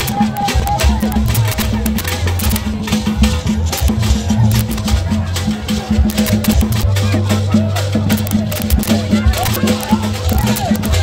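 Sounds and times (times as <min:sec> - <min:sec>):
hand rattles: 0:00.0 - 0:04.9, 0:06.0 - 0:06.9, 0:08.0 - 0:11.0
traditional drumming: 0:00.0 - 0:11.0
voices singing or calling: 0:00.0 - 0:11.0.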